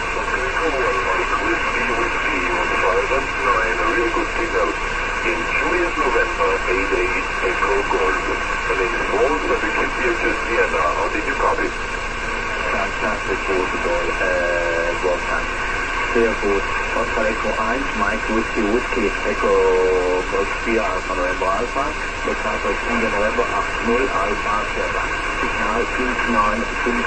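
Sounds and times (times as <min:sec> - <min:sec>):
faint voice over radio: 0:00.0 - 0:11.8, 0:12.5 - 0:27.0
radio receiver hiss: 0:00.0 - 0:27.0.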